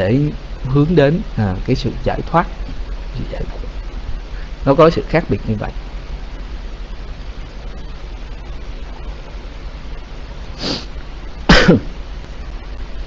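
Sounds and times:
voice chat line hiss: 0.0s - 13.0s
man sneezing: 11.5s - 12.0s.

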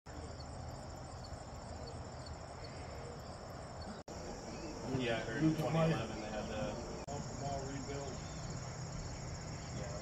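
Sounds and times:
crickets chirping: 0.1s - 10.0s.

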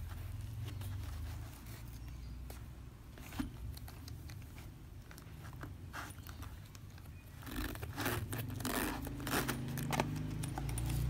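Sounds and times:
fingers fumbling at wallet zipper: 3.2s - 11.0s.

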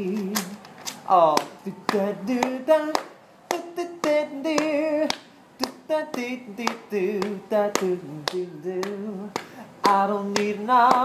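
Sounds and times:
man singing wordless melody: 0.0s - 11.0s.

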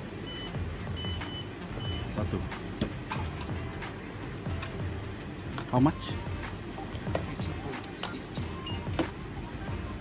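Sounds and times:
background music: 0.0s - 10.0s
high electronic beep: 0.2s - 2.2s, 8.4s - 9.0s.

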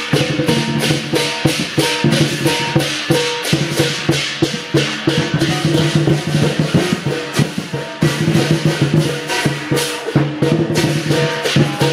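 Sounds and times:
cymbals crashing: 0.0s - 11.9s
large drum beaten fast: 0.0s - 11.9s.

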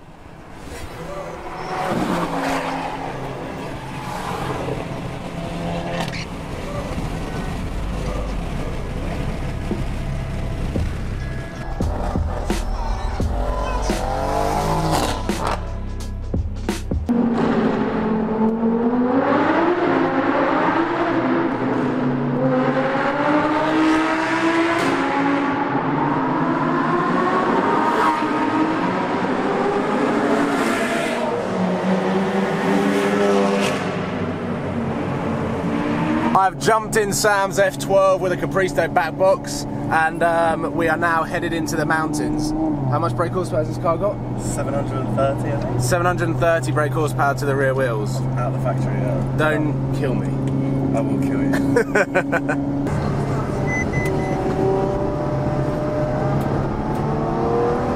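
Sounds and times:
car engines revving in tunnel: 0.1s - 16.2s, 17.1s - 57.9s
road and engine rumble in car: 3.0s - 16.3s, 36.3s - 57.9s.

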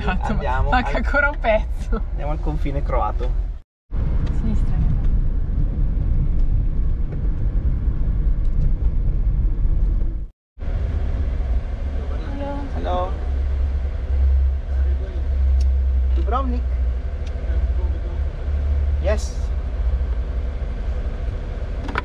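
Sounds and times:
engine and road rumble: 0.0s - 22.0s.

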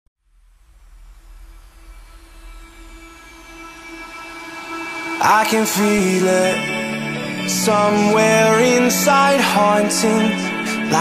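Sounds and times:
falling sweep: 0.2s - 8.7s
electronic dance music: 1.0s - 11.0s.

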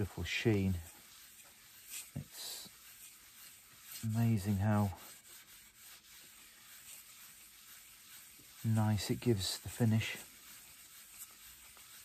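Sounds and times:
wire wool rubbing wood: 0.0s - 12.0s.

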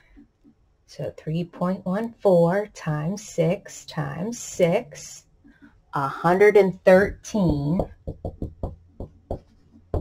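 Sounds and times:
marker tapping on whiteboard: 7.0s - 10.0s.

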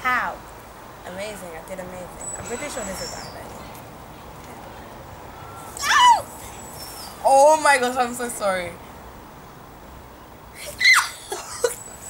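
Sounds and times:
girl squealing: 5.8s - 6.3s, 10.6s - 11.4s.

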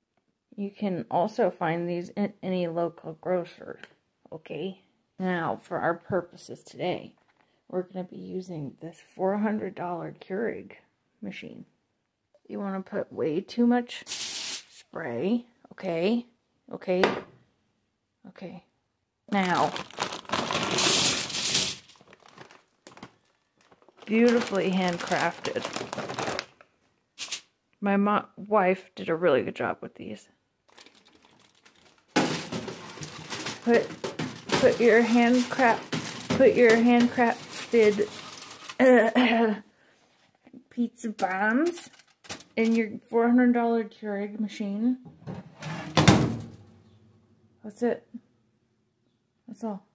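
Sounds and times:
plastic bag crinkling: 19.3s - 27.4s, 30.7s - 39.3s, 41.3s - 42.8s
oven door scraping: 45.2s - 46.4s.

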